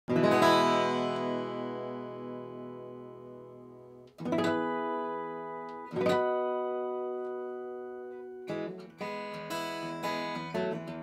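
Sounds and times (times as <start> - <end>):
acoustic guitar strumming chords: 0.1 - 11.0.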